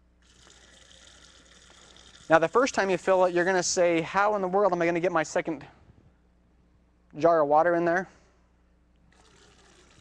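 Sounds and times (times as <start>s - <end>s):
water trickling into jar: 0.2s - 3.8s, 9.1s - 10.0s.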